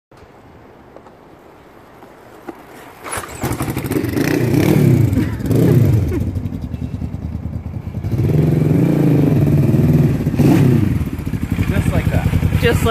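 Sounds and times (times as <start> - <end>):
motorcycle engine revving: 3.1 - 12.9.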